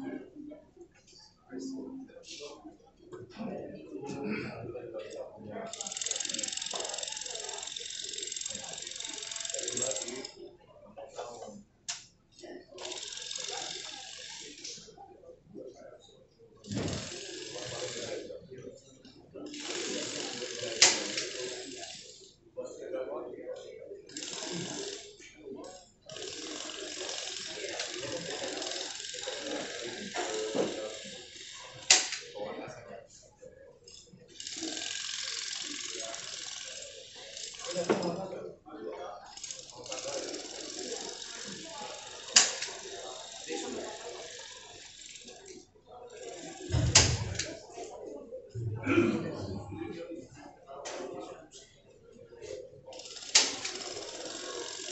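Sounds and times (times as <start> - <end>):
people talking: 0.0 - 11.7, 12.3 - 54.9.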